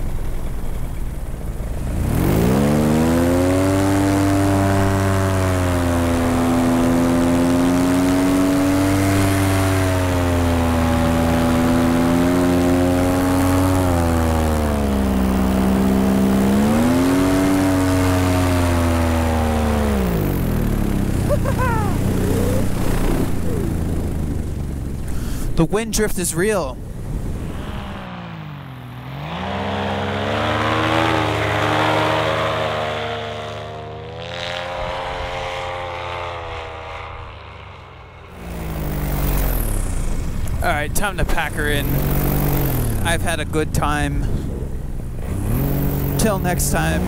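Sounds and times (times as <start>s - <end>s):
paramotor engine revving: 0.0s - 25.6s, 26.8s - 47.0s.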